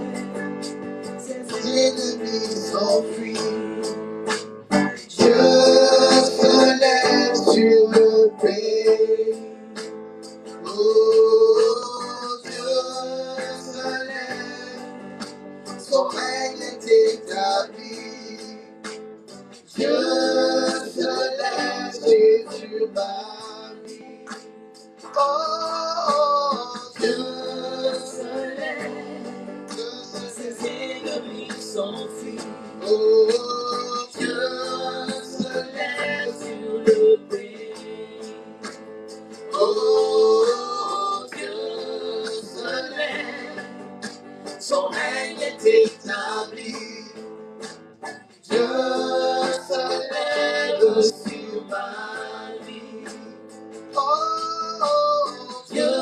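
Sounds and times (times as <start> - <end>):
singers leading congregation song: 0.0 - 4.2, 4.8 - 9.8, 10.6 - 18.7, 19.6 - 24.4, 25.1 - 47.2, 48.4 - 56.0
band accompaniment: 0.0 - 51.7.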